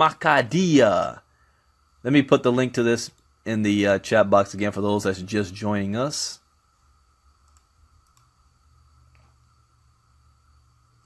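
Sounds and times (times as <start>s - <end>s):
low steady hum: 0.0s - 11.0s
faint computer clicks: 7.4s - 8.4s.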